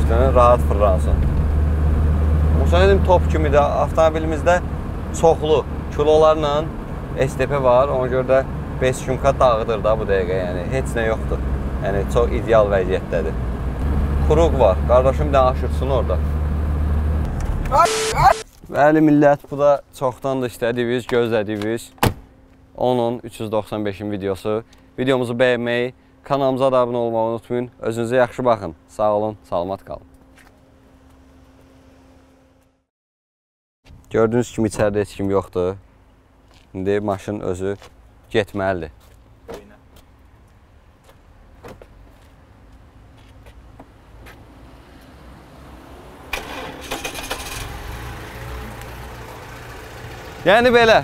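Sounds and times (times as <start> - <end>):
car engine and road drone: 0.0 - 18.6, 28.0 - 32.9, 39.2 - 51.0.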